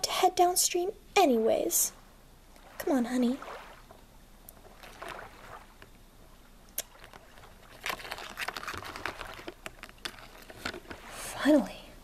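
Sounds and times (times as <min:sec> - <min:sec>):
rustling and tapping: 0:06.8 - 0:11.1.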